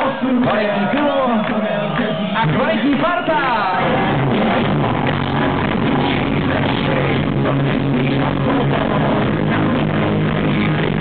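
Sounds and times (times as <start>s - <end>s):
live rock band playing: 3.8s - 11.0s.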